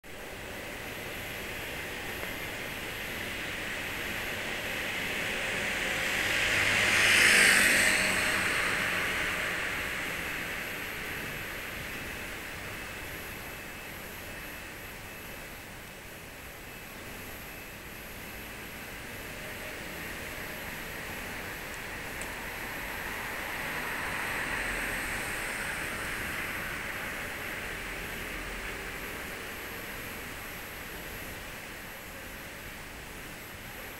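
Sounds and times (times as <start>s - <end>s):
background traffic: 0.0s - 17.2s, 17.8s - 33.9s
car driving past: 5.2s - 11.6s, 22.3s - 27.2s.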